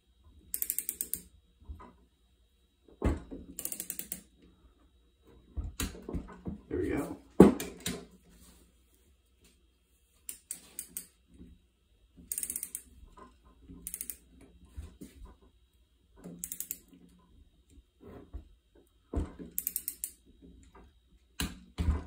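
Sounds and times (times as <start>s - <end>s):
torque wrench ratchet clicking: 0.5s - 1.3s, 3.6s - 4.3s, 12.3s - 12.9s, 13.8s - 14.2s, 16.4s - 16.9s, 19.5s - 20.2s.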